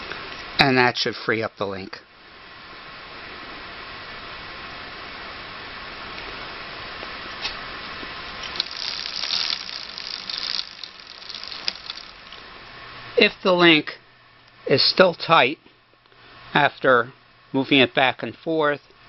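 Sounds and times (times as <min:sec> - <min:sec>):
bicycle chain whirring: 0:08.3 - 0:13.6
light chain clicks: 0:08.4 - 0:12.4.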